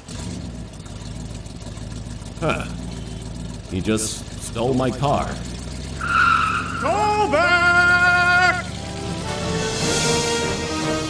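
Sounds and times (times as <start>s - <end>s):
car engine running: 0.0s - 11.0s.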